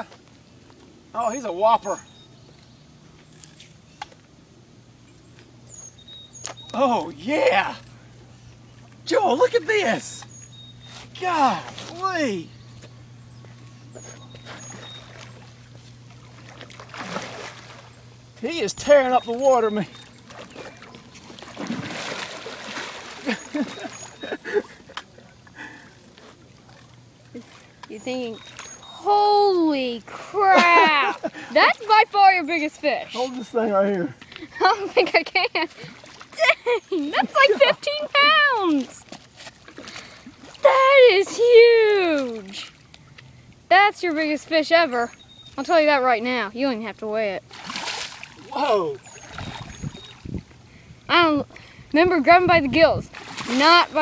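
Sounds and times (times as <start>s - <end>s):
low steady hum: 0.0s - 54.0s
fish splashing in water: 14.0s - 18.2s, 19.7s - 25.5s, 47.4s - 50.4s, 53.1s - 54.0s.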